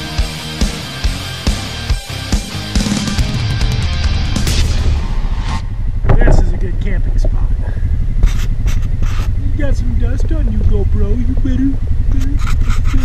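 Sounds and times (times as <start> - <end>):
atv engine idling: 6.7 - 13.0
man making wordless sounds: 9.4 - 12.4.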